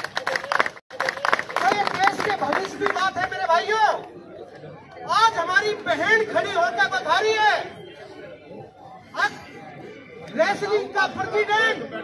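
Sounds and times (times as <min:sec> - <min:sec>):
low crowd chatter: 0:00.0 - 0:12.0
man speaking over microphone: 0:01.5 - 0:04.1, 0:05.0 - 0:07.9, 0:09.1 - 0:12.0.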